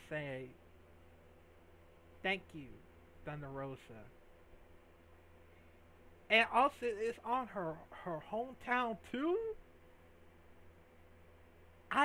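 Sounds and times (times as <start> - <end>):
man's voice: 6.3 - 9.6.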